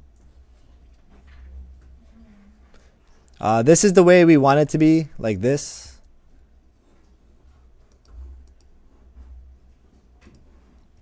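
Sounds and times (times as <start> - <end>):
low steady hum: 0.0 - 11.0
computer clicks: 7.9 - 8.8.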